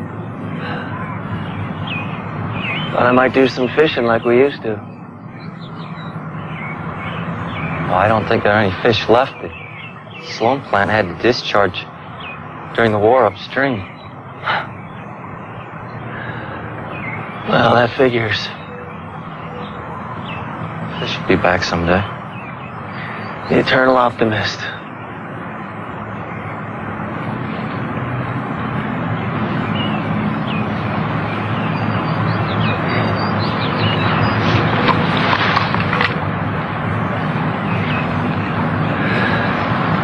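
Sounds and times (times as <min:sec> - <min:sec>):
outdoor background noise: 0:00.0 - 0:40.0
short breath-like sound: 0:00.5 - 0:01.5.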